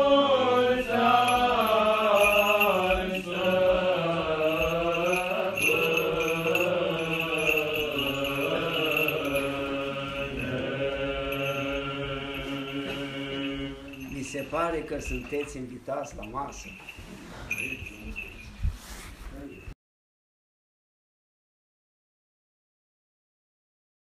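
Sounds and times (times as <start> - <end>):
church chanting: 0.0 - 15.6.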